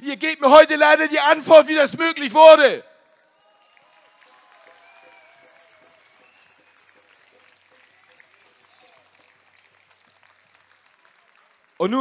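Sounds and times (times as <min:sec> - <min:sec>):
faint crowd clapping: 0:02.6 - 0:12.0.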